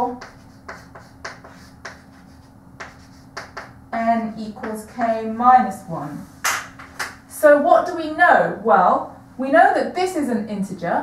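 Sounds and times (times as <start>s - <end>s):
chalk tapping on blackboard: 0.0s - 3.8s.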